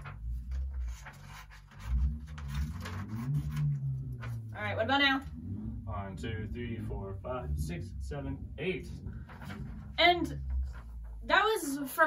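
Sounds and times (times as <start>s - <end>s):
paper rustling: 0.0s - 4.4s.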